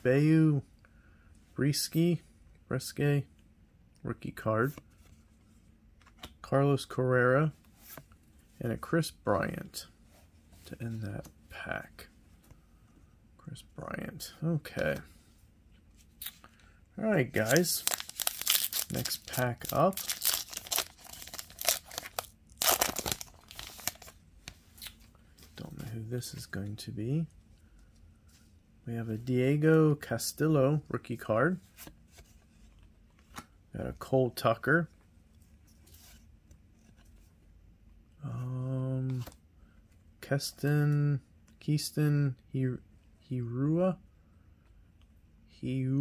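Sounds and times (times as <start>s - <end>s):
rustle of paper cards: 17.3s - 26.5s.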